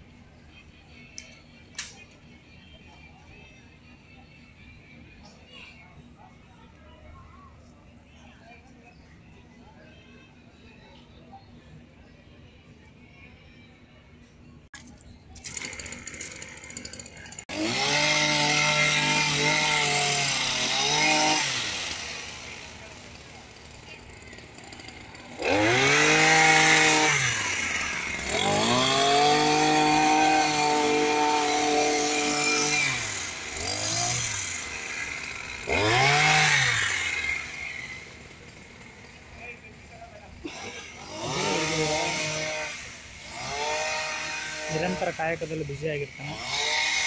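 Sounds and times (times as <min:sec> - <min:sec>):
hedge trimmer engine revving: 0:15.4 - 0:47.0.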